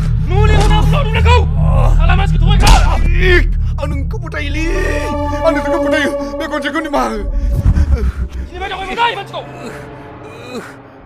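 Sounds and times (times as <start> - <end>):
man moaning: 4.6 - 10.8.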